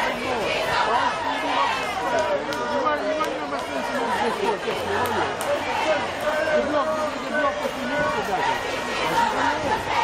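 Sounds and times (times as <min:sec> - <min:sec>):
large crowd chatter: 0:00.0 - 0:10.0.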